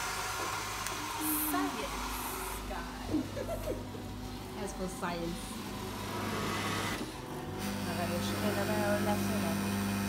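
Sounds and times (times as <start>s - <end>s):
coffee machine humming: 0.0s - 10.0s
coffee machine whirring: 0.0s - 10.0s.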